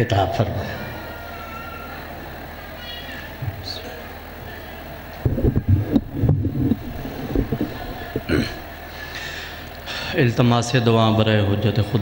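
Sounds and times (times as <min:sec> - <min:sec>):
microphone handling thumps: 0:05.2 - 0:08.7.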